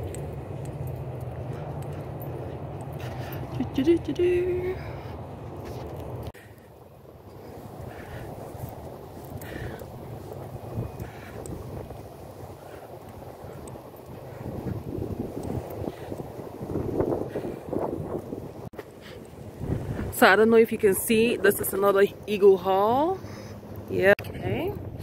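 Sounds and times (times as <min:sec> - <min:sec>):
wind rumbling on microphone: 0:00.0 - 0:25.0.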